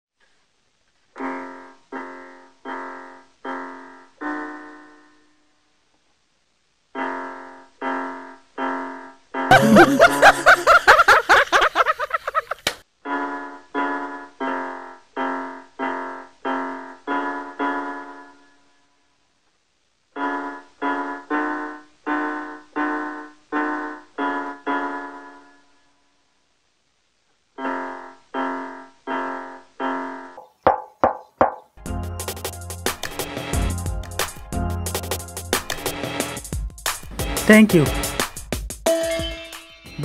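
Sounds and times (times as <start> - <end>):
electronic keyboard chords: 31.5 - 40.0.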